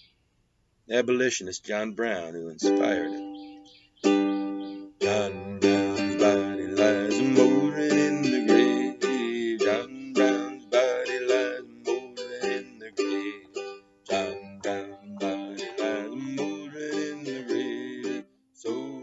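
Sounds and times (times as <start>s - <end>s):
ukulele strumming: 2.6s - 3.3s, 4.0s - 19.0s
man singing: 5.0s - 19.0s.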